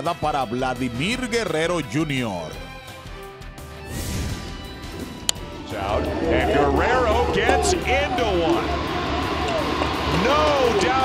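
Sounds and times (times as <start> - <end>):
background music: 0.0 - 11.0
excited voices: 5.6 - 11.0.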